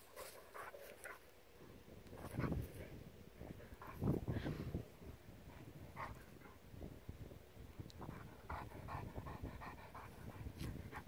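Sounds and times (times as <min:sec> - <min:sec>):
dog panting: 0:08.0 - 0:11.0.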